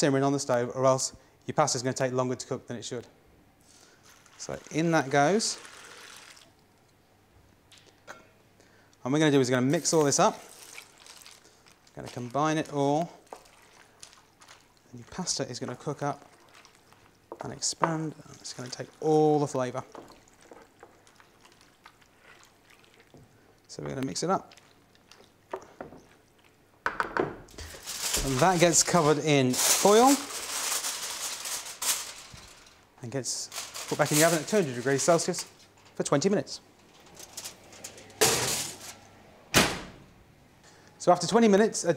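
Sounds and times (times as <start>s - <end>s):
aluminium foil crinkling: 3.8s - 6.5s, 9.7s - 23.2s, 27.6s - 36.1s, 36.8s - 39.0s
person speaking: 4.4s - 5.8s, 27.6s - 32.0s, 33.0s - 36.7s
wet squelching of stirred food: 9.8s - 26.7s.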